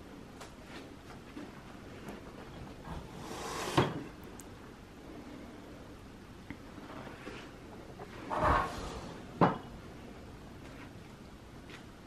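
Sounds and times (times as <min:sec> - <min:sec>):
drawer sliding open: 0:02.8 - 0:04.1, 0:08.1 - 0:09.3.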